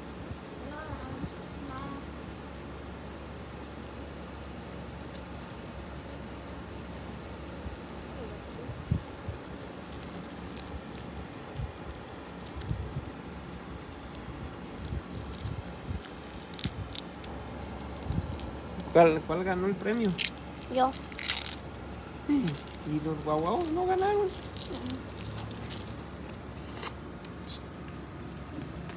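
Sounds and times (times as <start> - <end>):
steady low hum: 0.0 - 28.9
plastic wrapper crinkling: 2.3 - 28.9.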